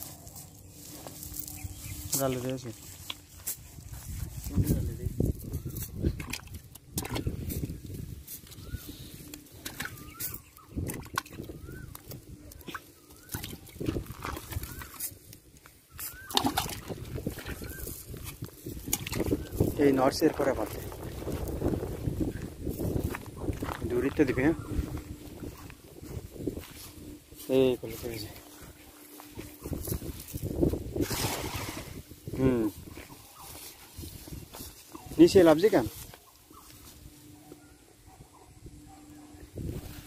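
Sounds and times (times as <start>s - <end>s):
small fish flapping: 9.6s - 15.1s, 16.1s - 19.6s
wet net slapping on grass: 31.0s - 32.0s.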